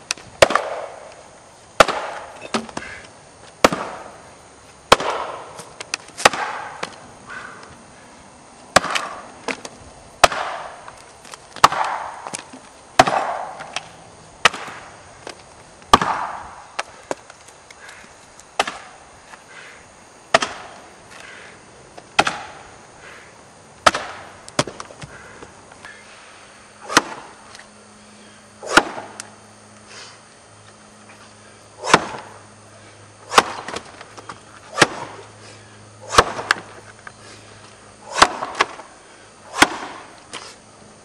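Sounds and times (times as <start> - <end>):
axe chopping wood: 0.1 - 1.1, 1.8 - 3.0, 3.6 - 4.1, 4.9 - 7.0, 8.7 - 17.2, 18.6 - 18.9, 20.3 - 20.8, 22.1 - 22.6, 23.8 - 25.1, 26.8 - 27.4, 28.6 - 29.3, 31.8 - 32.4, 33.3 - 35.3, 36.0 - 36.7, 38.1 - 38.9, 39.5 - 40.4.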